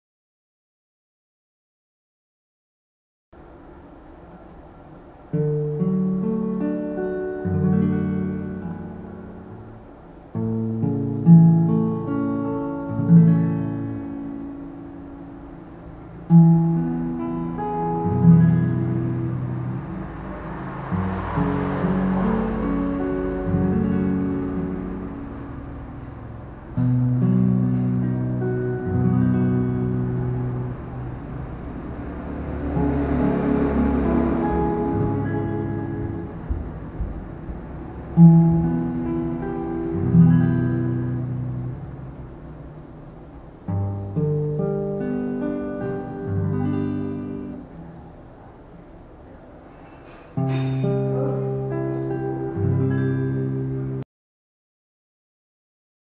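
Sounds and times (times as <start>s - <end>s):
acoustic guitar chords: 3.4s - 54.0s.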